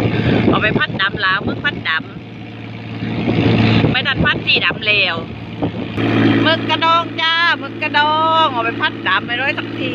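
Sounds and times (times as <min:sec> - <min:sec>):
boat engine humming: 0:00.0 - 0:09.9.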